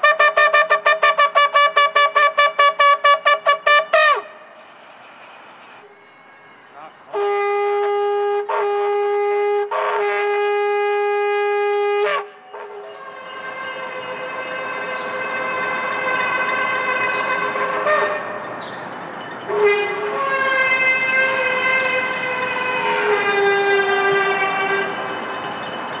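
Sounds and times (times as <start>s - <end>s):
shofar blasts: 0.0s - 4.6s, 7.1s - 18.6s, 19.5s - 25.0s
steady background noise: 4.1s - 8.4s, 12.2s - 26.0s.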